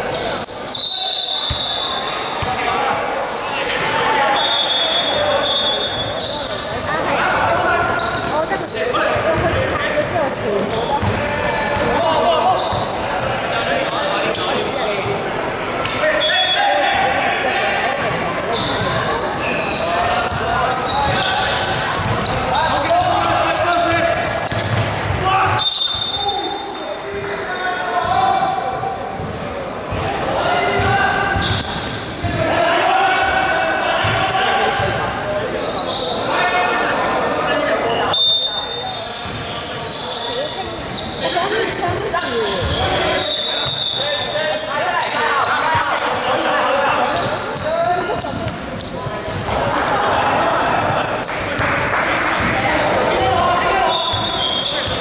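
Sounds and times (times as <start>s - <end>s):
players calling out: 0.1s - 29.2s, 30.0s - 55.0s
basketball bouncing on wooden court: 9.1s - 12.1s, 21.0s - 23.2s, 24.1s - 25.6s, 30.8s - 32.4s, 47.1s - 49.7s.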